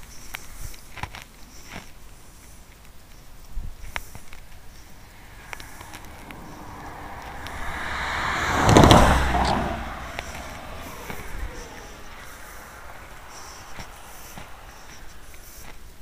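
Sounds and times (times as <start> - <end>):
car driving past: 4.5 - 16.0.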